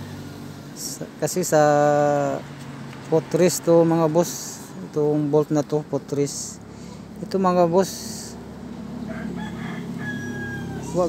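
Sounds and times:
rooster crowing: 9.0s - 11.0s.

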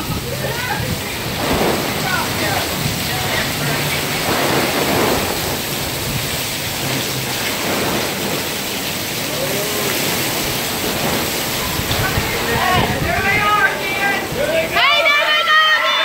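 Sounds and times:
heavy rain on fabric canopy: 0.0s - 16.0s.

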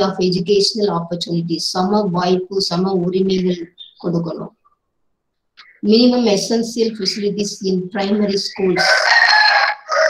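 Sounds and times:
person speaking: 0.0s - 4.8s, 5.6s - 9.3s.

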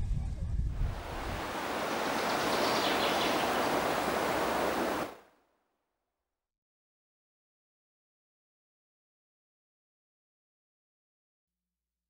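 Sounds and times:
flowing water rushing: 0.8s - 5.2s.

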